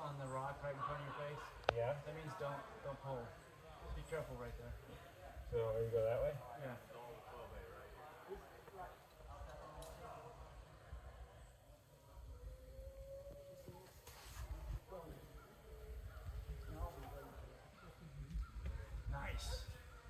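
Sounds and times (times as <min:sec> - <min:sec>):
distant people talking: 0:00.0 - 0:20.0.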